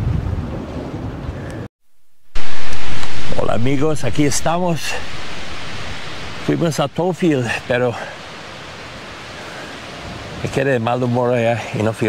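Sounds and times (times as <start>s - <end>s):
wind noise on microphone: 0.0s - 1.7s, 2.3s - 10.6s.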